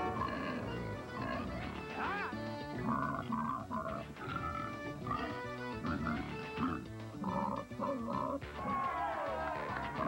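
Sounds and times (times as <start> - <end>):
pigs grunting and oinking: 0.0 - 8.4
background music: 0.0 - 10.0.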